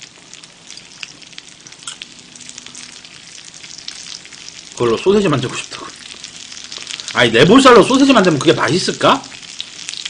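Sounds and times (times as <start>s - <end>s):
small crackles and pops: 0.0s - 7.2s, 7.9s - 10.0s
food sizzling on a griddle: 0.0s - 10.0s.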